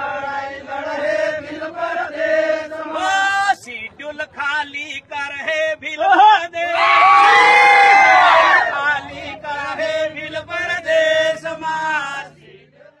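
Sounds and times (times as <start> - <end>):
male voices chanting in unison: 0.0 - 13.0.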